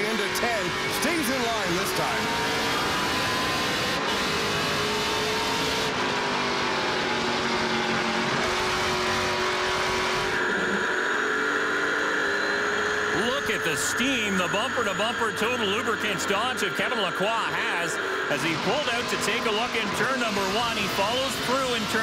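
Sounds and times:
stock car engines at speed: 0:00.0 - 0:22.0.

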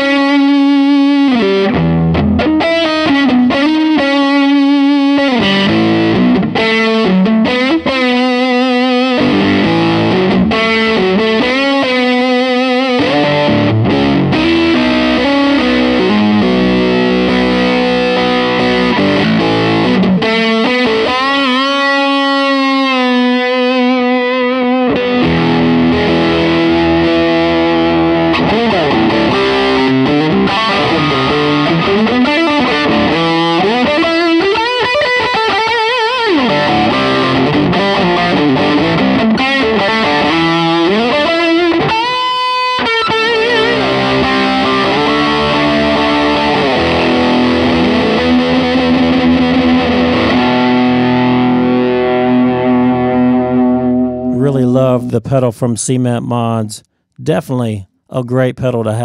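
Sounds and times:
distorted electric guitar lead: 0:00.0 - 0:59.0.

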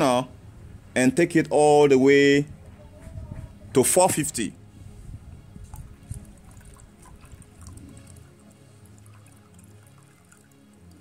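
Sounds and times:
faint music: 0:00.0 - 0:11.0
water trickling into a cup: 0:05.6 - 0:11.0.

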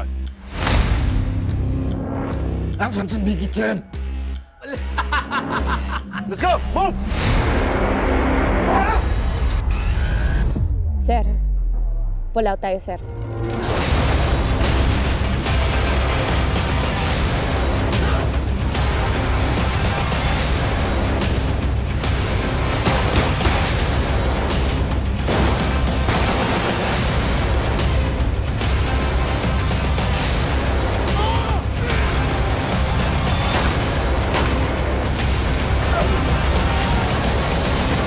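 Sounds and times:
loud trailer music: 0:00.0 - 0:38.0
gunfire: 0:22.8 - 0:23.9, 0:25.3 - 0:27.3.

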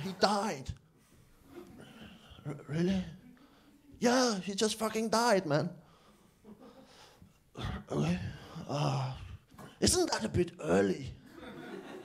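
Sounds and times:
man speaking: 0:00.0 - 0:00.8, 0:02.4 - 0:03.3, 0:04.0 - 0:05.8, 0:07.6 - 0:11.3
breathy vocal sound: 0:07.6 - 0:09.8.

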